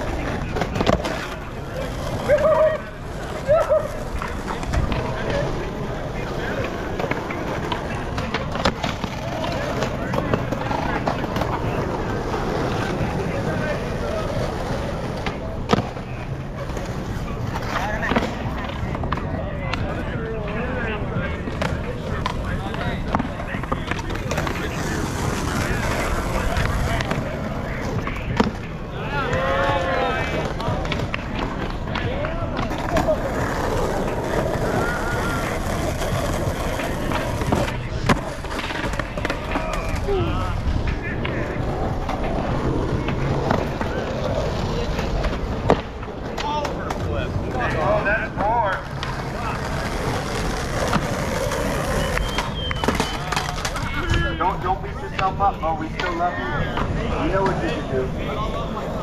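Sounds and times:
onlookers chattering: 0.0s - 59.0s
skateboard clacks: 0.0s - 59.0s
skateboard wheels rolling on asphalt: 0.0s - 59.0s.

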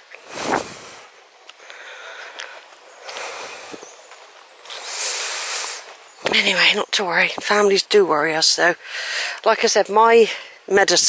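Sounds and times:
person breathing heavily: 0.2s - 4.0s, 4.7s - 6.0s, 8.8s - 9.4s.

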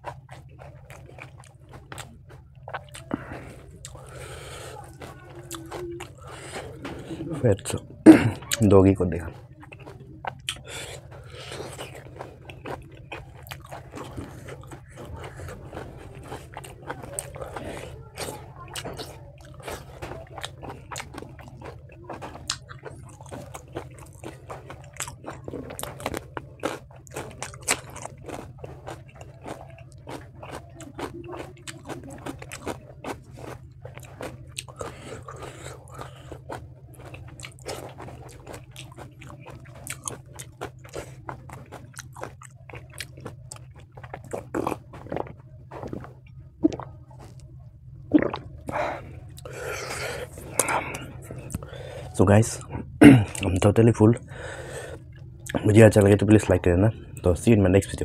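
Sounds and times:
person chewing food: 0.0s - 58.0s
low hum: 9.2s - 58.0s.

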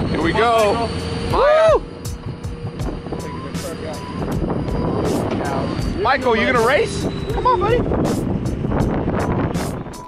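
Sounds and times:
wind on microphone: 0.0s - 0.6s, 1.2s - 10.0s
vehicle engine running: 0.0s - 10.0s.

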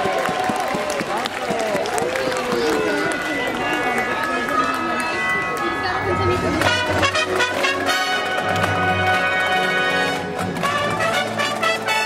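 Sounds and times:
spectators talking and calling out: 0.0s - 12.0s
parade music from loudspeakers: 5.2s - 12.0s
held brass notes: 6.2s - 12.0s.

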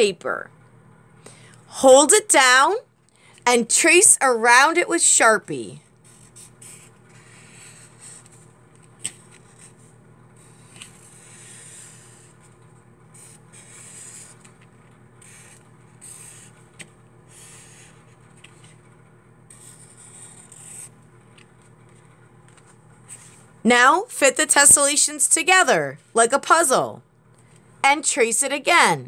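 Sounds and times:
marker scratching on paper: 6.0s - 8.4s, 10.4s - 12.5s, 13.1s - 18.8s, 19.5s - 21.0s, 21.9s - 23.5s.

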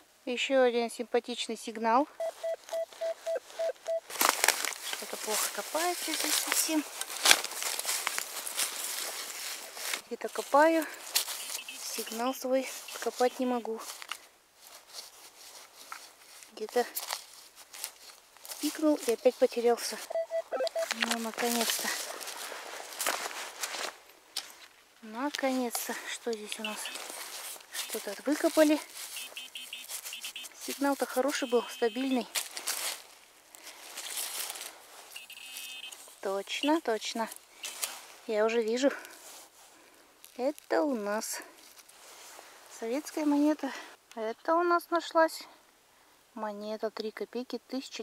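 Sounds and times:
metal detector buzzing tone: 2.2s - 4.0s, 11.3s - 13.6s, 20.1s - 21.1s, 26.6s - 27.2s, 29.1s - 32.3s, 35.2s - 36.0s
scratching and rustling in soil: 2.3s - 43.6s.

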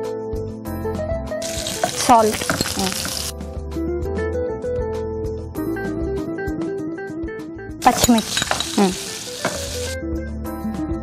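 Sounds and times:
background music: 0.0s - 11.0s
onions sizzling in hot oil: 1.4s - 3.3s, 7.8s - 10.0s.

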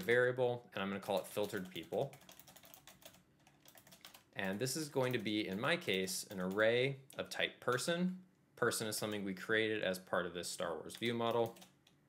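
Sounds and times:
computer keyboard typing: 1.0s - 7.9s, 10.9s - 11.9s.

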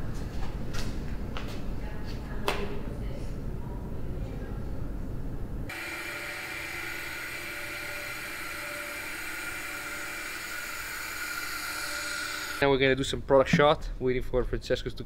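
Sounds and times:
low rumbling room tone: 0.0s - 5.7s
machine hum with hiss: 5.7s - 12.6s.

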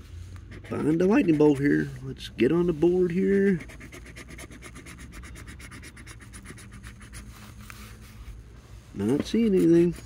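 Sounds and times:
coin scratching lottery ticket: 0.5s - 2.0s, 2.8s - 7.4s, 9.0s - 10.0s.

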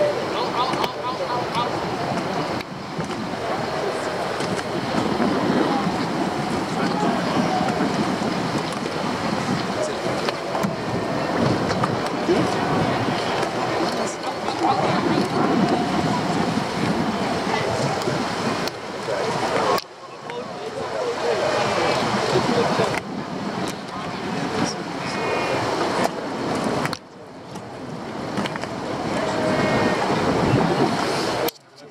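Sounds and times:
water rushing around boat: 0.0s - 31.9s.

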